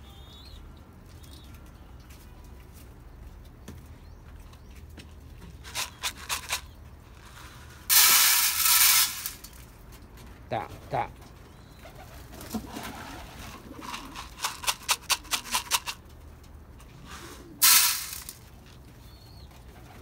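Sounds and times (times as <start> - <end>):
wire mesh rattling: 5.6 - 6.6, 7.9 - 9.8, 13.1 - 16.1, 17.6 - 18.5.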